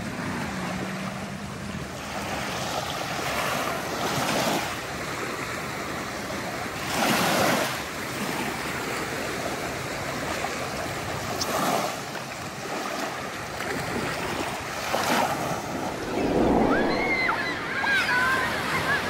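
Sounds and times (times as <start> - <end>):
small waves lapping on beach: 0.0 - 16.1.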